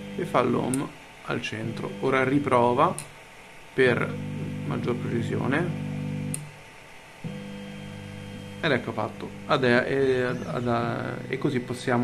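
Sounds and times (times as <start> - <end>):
stepper motors whining: 7.2 - 12.0.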